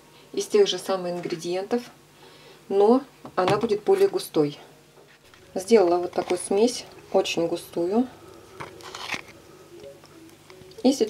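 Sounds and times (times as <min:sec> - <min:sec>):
plastic stick scraping bowl: 0:08.6 - 0:09.4.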